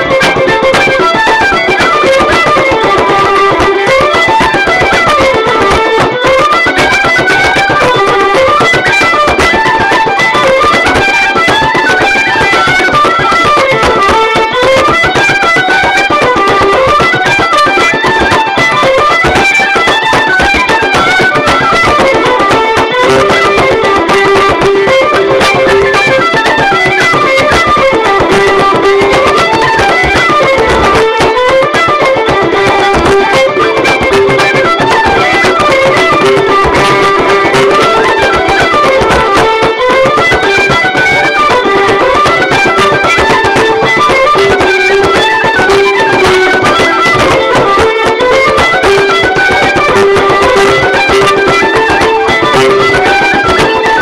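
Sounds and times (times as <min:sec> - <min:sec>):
fiddle dance tune: 0:00.0 - 0:54.0
frame drum beat: 0:00.0 - 0:54.0
held drone note: 0:00.0 - 0:54.0.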